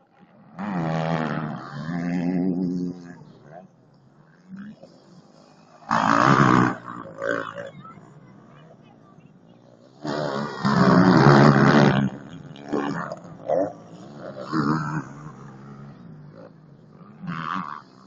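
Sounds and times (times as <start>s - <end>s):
motocross engines revving: 0.0s - 18.0s.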